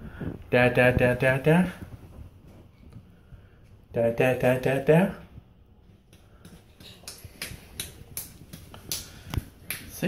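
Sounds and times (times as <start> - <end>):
palms patting hardwood floor: 5.8 - 10.0.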